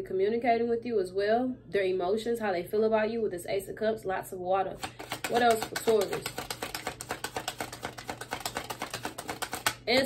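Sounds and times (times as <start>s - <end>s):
cards being shuffled: 4.8s - 10.0s.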